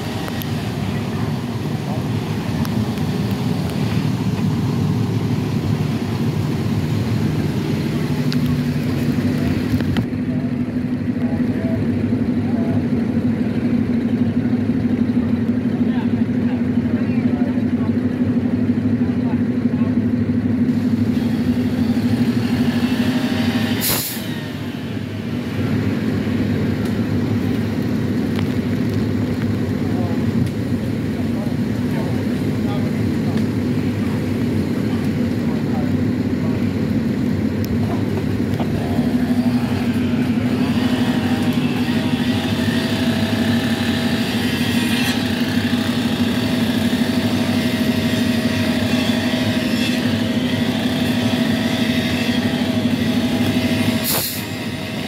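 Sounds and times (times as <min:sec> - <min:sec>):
truck engine idling: 0:00.0 - 0:55.0
sharp hiss: 0:23.8 - 0:24.4, 0:54.0 - 0:54.4.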